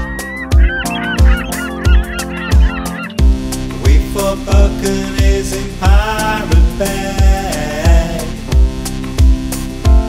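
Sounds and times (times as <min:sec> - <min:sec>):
gulls calling: 0:00.0 - 0:03.4
instrumental music with low beat: 0:00.0 - 0:10.0.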